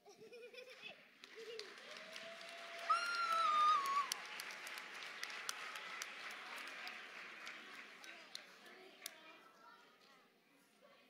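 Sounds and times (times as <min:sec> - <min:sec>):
audience applauding: 0:01.2 - 0:09.2.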